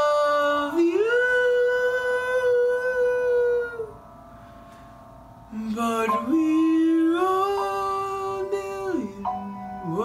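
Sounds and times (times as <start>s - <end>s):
boy singing long note: 0.0s - 4.0s, 5.5s - 10.0s.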